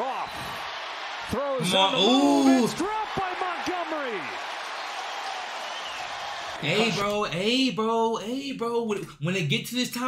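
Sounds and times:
stadium crowd noise: 0.0 - 7.2
man exclaiming: 1.6 - 4.2.

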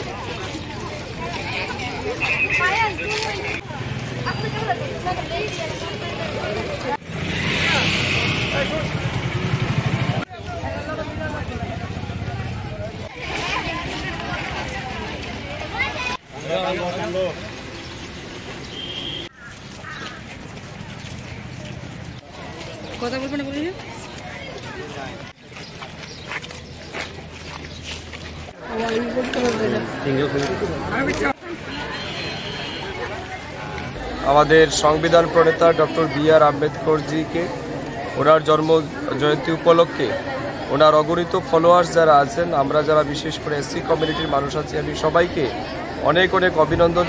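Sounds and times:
chatter of voices: 0.0 - 17.7, 20.6 - 27.4, 28.5 - 47.0
vehicle engine rumbling: 3.1 - 13.1.

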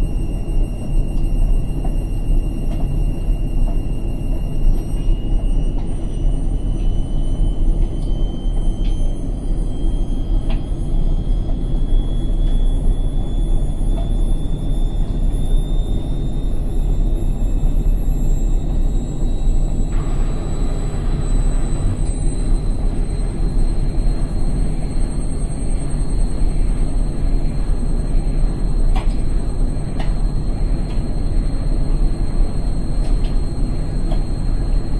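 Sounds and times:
high motor whine: 0.0 - 34.9.

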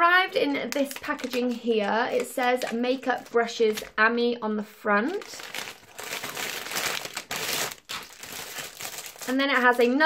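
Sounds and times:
plastic packaging crinkling: 0.9 - 4.0, 5.0 - 9.9.

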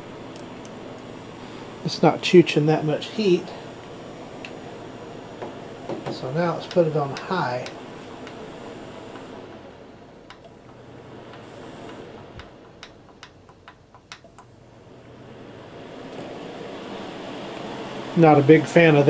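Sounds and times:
fan heater blower whooshing: 0.0 - 19.0.

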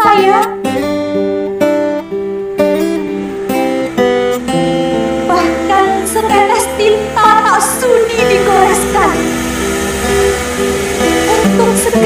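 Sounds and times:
woman singing: 0.0 - 0.7, 5.3 - 9.3, 11.2 - 12.0
acoustic guitars playing: 0.0 - 12.0.

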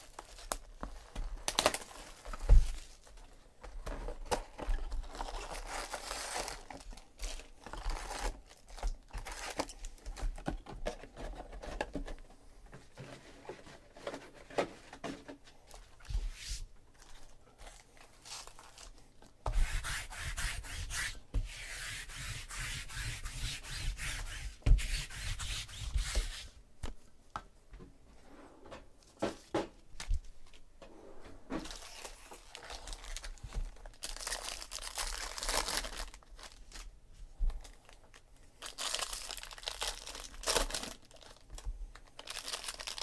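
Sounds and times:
card packs rustling: 0.0 - 12.2, 16.9 - 19.2, 31.6 - 36.9, 37.5 - 43.0.

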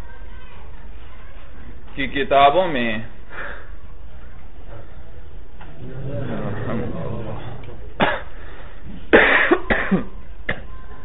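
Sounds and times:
person coughing: 8.0 - 8.3, 9.1 - 10.1.

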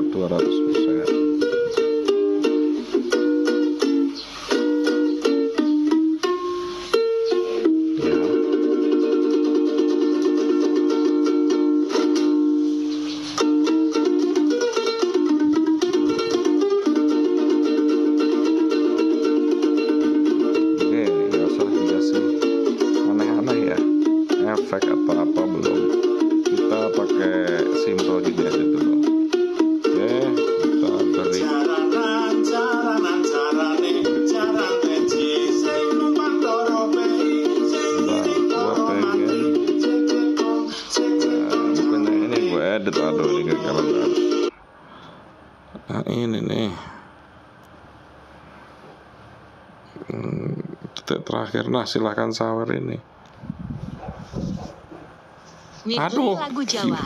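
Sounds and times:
ukulele strumming: 0.0 - 44.6
man singing: 8.0 - 9.1, 21.1 - 22.5, 24.6 - 29.1, 29.9 - 44.5.

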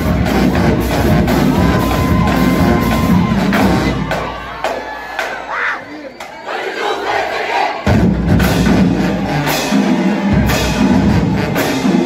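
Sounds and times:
marching band playing: 0.0 - 5.5, 6.5 - 12.0
band percussion: 0.0 - 6.3, 7.0 - 12.0
crowd shouting and cheering: 0.0 - 12.0.

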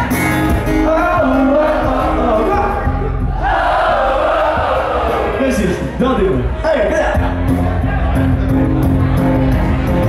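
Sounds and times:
crowd singing along: 0.0 - 5.7, 6.9 - 10.0
acoustic band playing: 0.0 - 6.0, 7.0 - 10.0
man singing lead vocal: 0.6 - 3.2.

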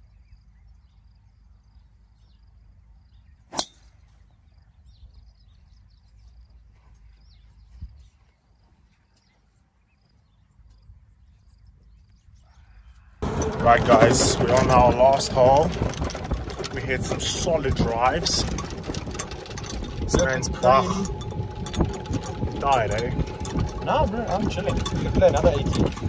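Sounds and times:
golf club striking ball: 3.5 - 3.9.

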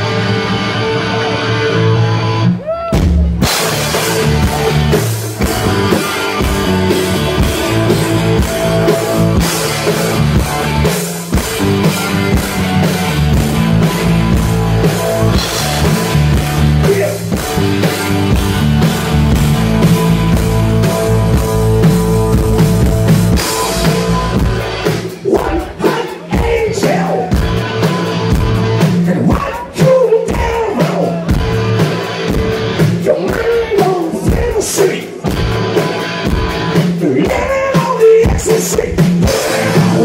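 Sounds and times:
bass guitar: 0.0 - 40.0
electric guitars: 0.0 - 40.0
drum kit beat: 2.6 - 40.0.

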